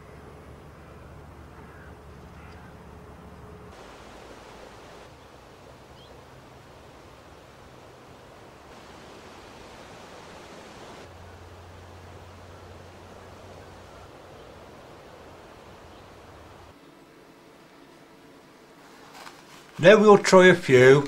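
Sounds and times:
outdoor background hiss: 0:00.0 - 0:21.0.

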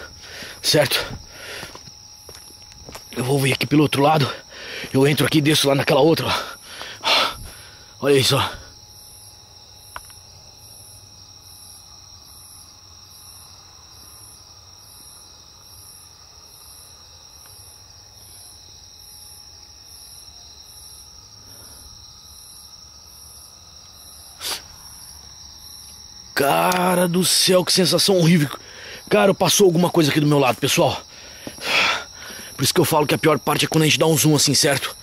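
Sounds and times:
crickets chirping: 0:00.0 - 0:35.0
steady high hum: 0:00.0 - 0:35.0.

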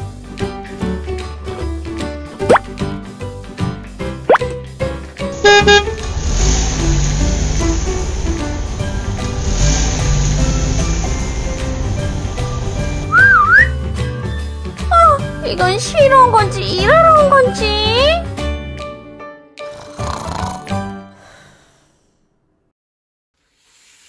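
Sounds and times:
horn-like honk: 0:05.4 - 0:06.2
car engine rumble and hiss: 0:05.4 - 0:13.1
children's background music: 0:06.8 - 0:19.8
rising whistle swoops: 0:13.1 - 0:13.8
wobbly whistle: 0:13.1 - 0:13.8.

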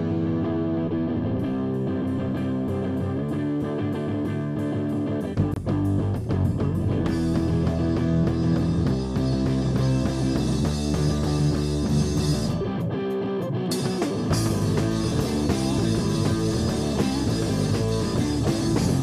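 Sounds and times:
bass guitar: 0:00.0 - 0:19.0
drum kit: 0:00.0 - 0:19.0
electric guitar: 0:00.0 - 0:19.0.

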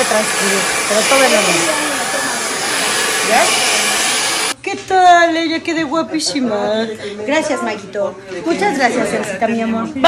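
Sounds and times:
hair dryer blowing: 0:00.0 - 0:04.6.

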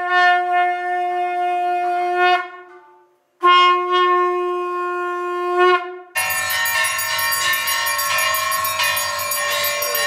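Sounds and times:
temple bells clanging: 0:06.2 - 0:10.0.

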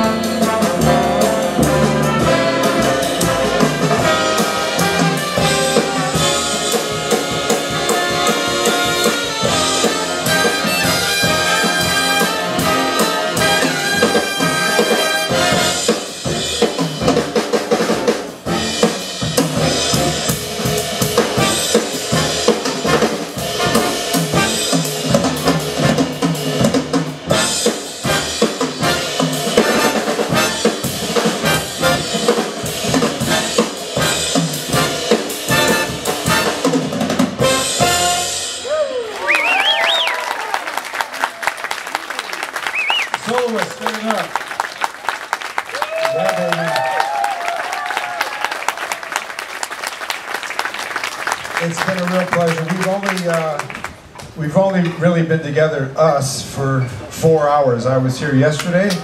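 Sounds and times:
jazz big band playing: 0:00.0 - 0:38.8
audience cheering and whooping: 0:38.6 - 0:50.4.

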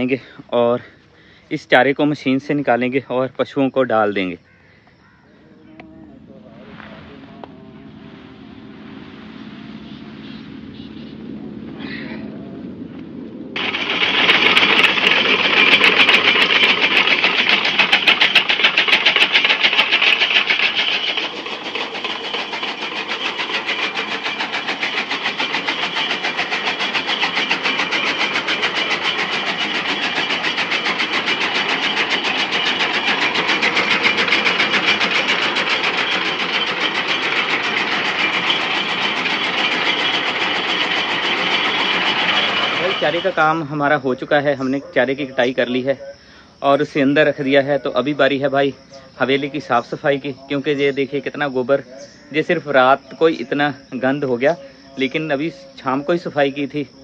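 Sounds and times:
chaff cutter chopping fodder: 0:13.6 - 0:43.6.

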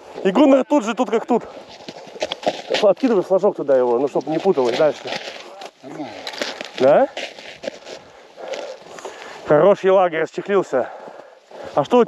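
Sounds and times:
rustles: 0:01.4 - 0:09.5.

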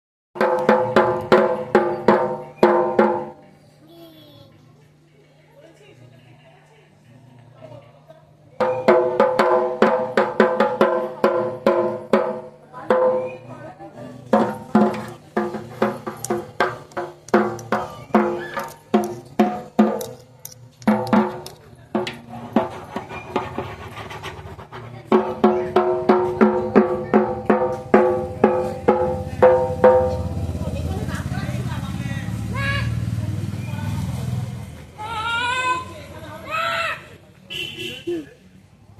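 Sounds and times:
barrel drum beaten with sticks: 0:00.4 - 0:03.4, 0:08.6 - 0:13.5, 0:14.2 - 0:31.1.

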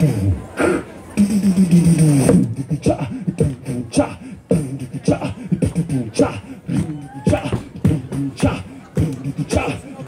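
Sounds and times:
man beatboxing: 0:00.0 - 0:10.0.

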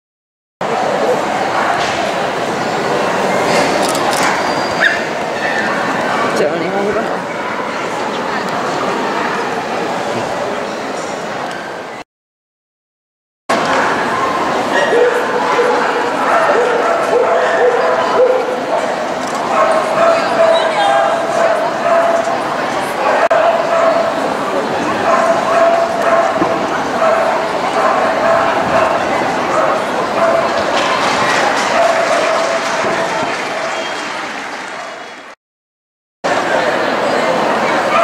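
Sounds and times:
crowd chatter indoors: 0:00.6 - 0:12.0, 0:13.5 - 0:35.4, 0:36.2 - 0:38.0
dogs yipping and whining: 0:04.2 - 0:05.8.

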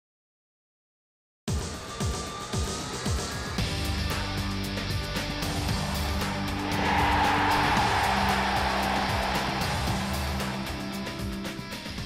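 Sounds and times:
intro music with steady beat: 0:03.7 - 0:12.0
rushing whoosh: 0:06.0 - 0:11.2.

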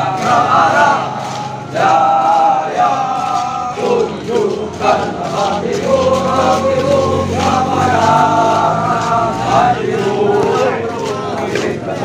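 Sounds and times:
men singing a marching song: 0:00.0 - 0:12.0.

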